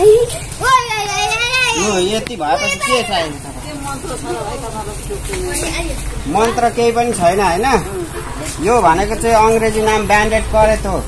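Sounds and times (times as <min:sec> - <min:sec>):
children's voices: 0:00.0 - 0:06.8
people talking: 0:00.0 - 0:11.0.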